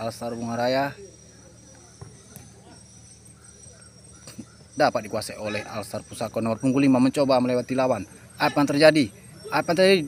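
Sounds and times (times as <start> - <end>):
distant players calling: 0.0 - 10.0
high-pitched insect drone: 0.0 - 10.0.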